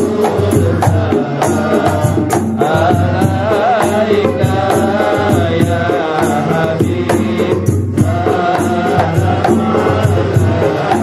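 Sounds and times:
devotional chanting: 0.0s - 11.0s.

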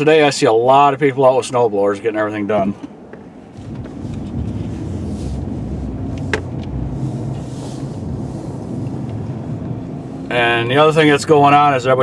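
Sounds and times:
engine and road rumble: 0.0s - 12.0s.

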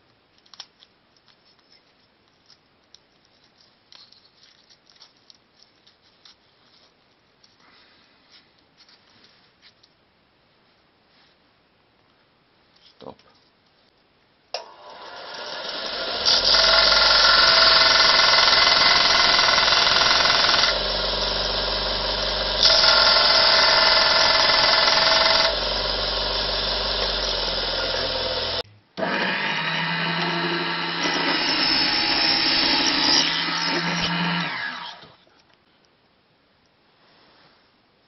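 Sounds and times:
belt sander running: 14.6s - 35.1s
table saw humming: 14.6s - 35.2s.

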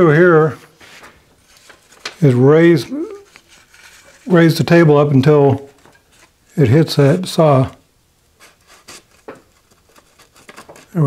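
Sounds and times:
faint paper rustling and scraping: 0.0s - 11.0s.

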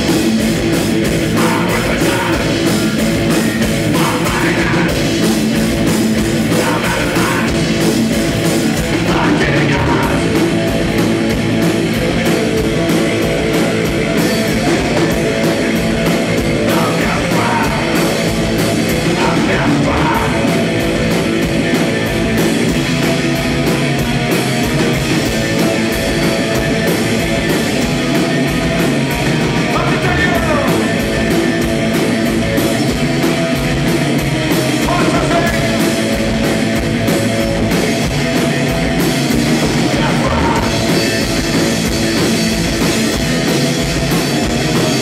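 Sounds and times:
bass guitar: 0.0s - 45.0s
distorted electric guitar: 0.0s - 45.0s
drum kit: 0.0s - 45.0s.

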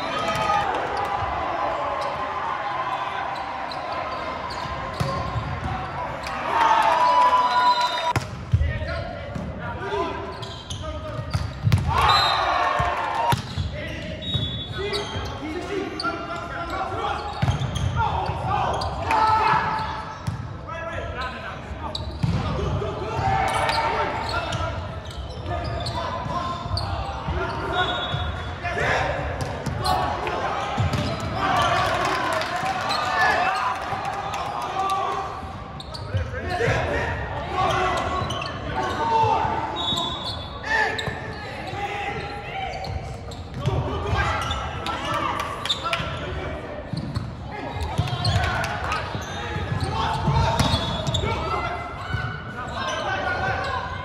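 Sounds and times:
players shouting: 0.0s - 8.2s, 11.8s - 20.2s, 21.7s - 35.5s, 36.1s - 43.0s, 47.5s - 54.0s
shoe squeak: 3.4s - 5.2s, 10.3s - 12.4s, 13.5s - 17.9s, 21.2s - 22.3s, 23.6s - 28.5s, 35.8s - 36.3s, 37.7s - 43.7s, 46.9s - 51.4s.

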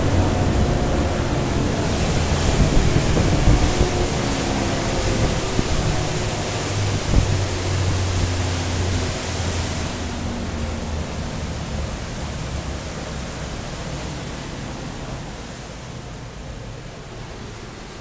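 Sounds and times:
outboard engines droning: 0.0s - 18.0s
rush of wind and water: 0.0s - 18.0s.

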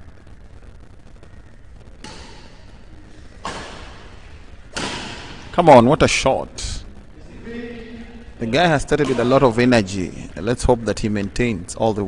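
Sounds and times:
racket hitting shuttlecock: 2.0s - 2.8s, 3.4s - 5.5s.

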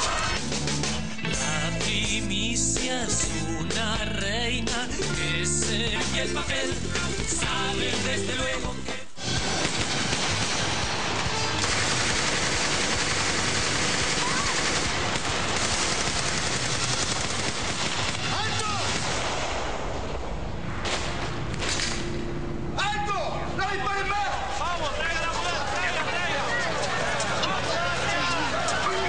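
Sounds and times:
music: 0.0s - 12.3s
rapid gunfire: 9.2s - 19.9s.

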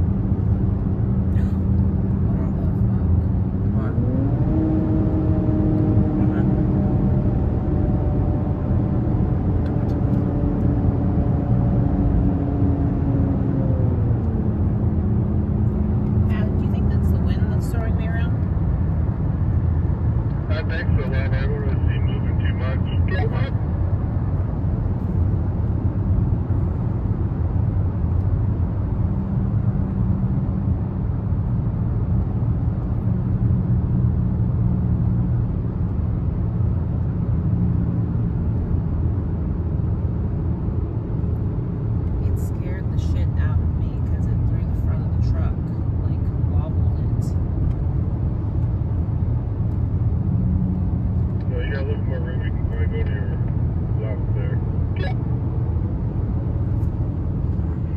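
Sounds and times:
car driving through tunnel: 0.0s - 57.9s.

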